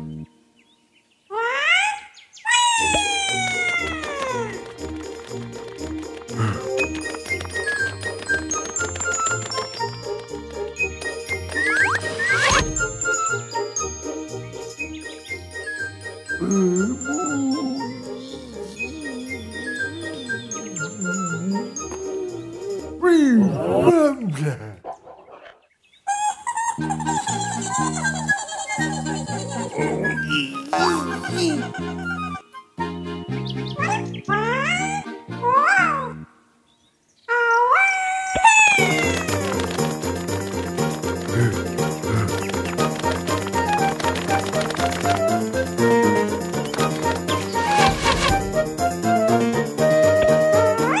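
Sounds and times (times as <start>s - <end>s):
cheerful music jingle: 3.0s - 23.2s, 38.8s - 51.0s
rising cartoon glide: 16.3s - 23.0s
deep wordless ogre calls: 16.4s - 25.6s
background music with steady beat: 38.8s - 51.0s.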